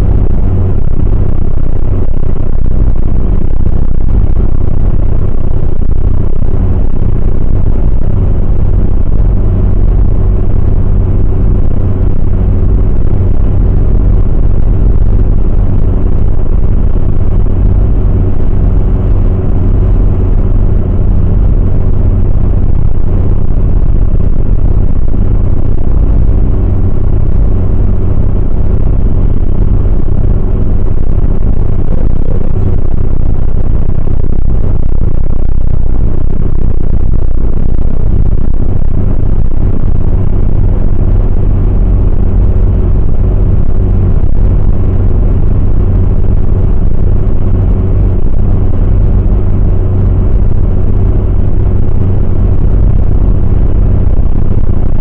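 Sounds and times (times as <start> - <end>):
car engine and tyres rumbling: 0.0 - 55.0
constant low hum: 0.0 - 55.0.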